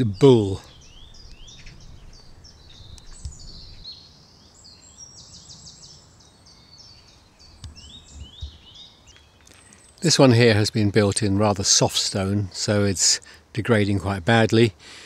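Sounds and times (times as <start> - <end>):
songbirds chirping and trilling: 0.0 - 15.0.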